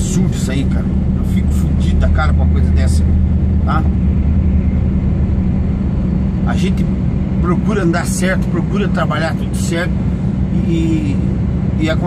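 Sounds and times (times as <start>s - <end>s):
truck diesel engine running: 0.0s - 12.0s.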